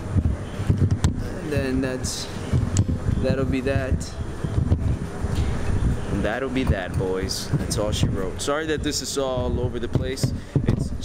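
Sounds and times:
microphone handling rumble: 0.0 - 11.0.

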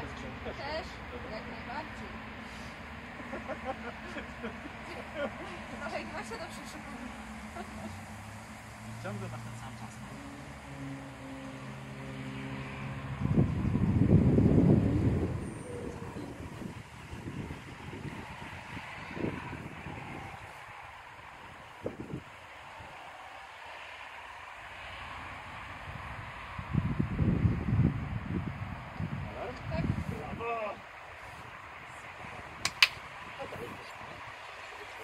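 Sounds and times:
low engine-like hum: 0.0 - 35.0
wind buffeting microphone: 12.1 - 23.5, 25.0 - 35.0.

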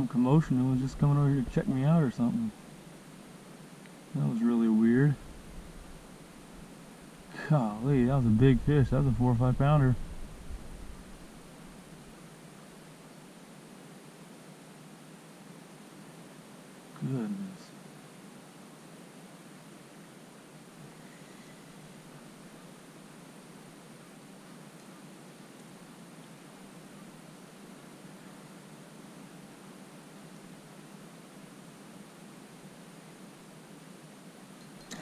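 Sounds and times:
faint background hiss: 0.0 - 35.0
low hum: 4.1 - 12.7.

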